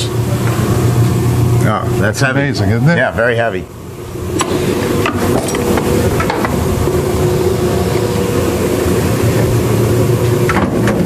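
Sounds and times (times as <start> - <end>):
ice cream freezer humming: 0.0 - 11.0.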